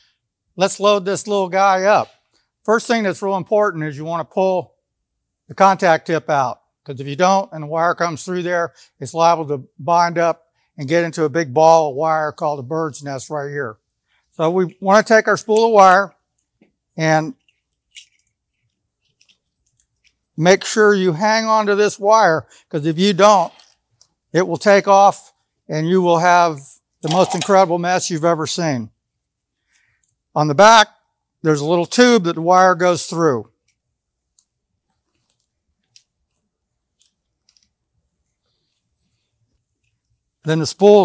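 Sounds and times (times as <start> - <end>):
faint clicks of wire spool handled: 33.6 - 38.9.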